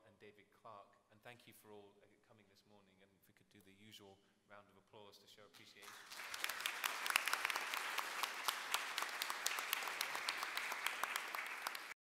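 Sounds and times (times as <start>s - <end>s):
audience applauding: 5.8s - 12.0s.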